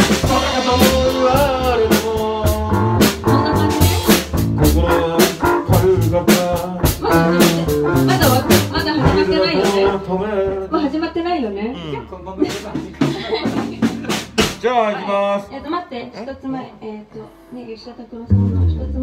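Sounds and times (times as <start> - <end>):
loud band music: 0.0 - 10.4, 12.4 - 14.8, 18.3 - 19.0
drum kit beat: 0.0 - 11.0, 12.4 - 14.8, 18.3 - 19.0.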